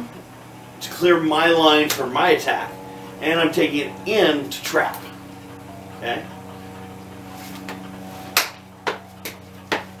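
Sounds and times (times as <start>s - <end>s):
hands and forearms slapping: 8.4s - 9.9s.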